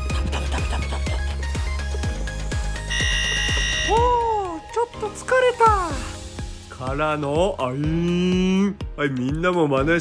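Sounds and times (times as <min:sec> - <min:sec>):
background music with a beat: 0:00.0 - 0:04.8
electronic buzzer tone: 0:02.8 - 0:04.1.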